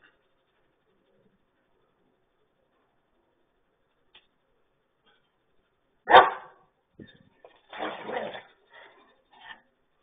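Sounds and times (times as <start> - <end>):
dog barking: 6.1 - 6.7.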